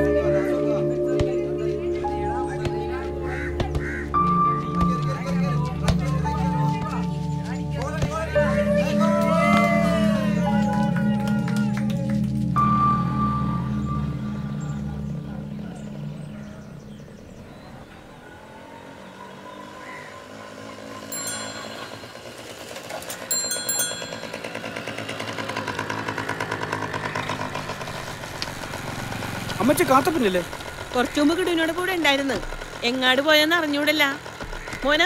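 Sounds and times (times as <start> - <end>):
background music: 0.0 - 17.8
small motorcycle engine: 7.8 - 35.0
bell ringing: 21.0 - 25.2.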